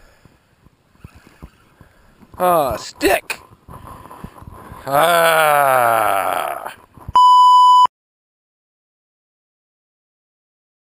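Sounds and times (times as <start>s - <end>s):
electronic beep tone: 7.2s - 7.9s.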